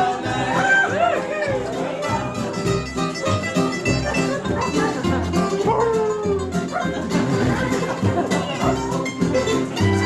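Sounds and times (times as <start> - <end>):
fiddle: 0.0 - 10.0
guitar: 0.0 - 10.0
mandolin strumming: 0.0 - 10.0
plucked double bass: 0.0 - 10.0.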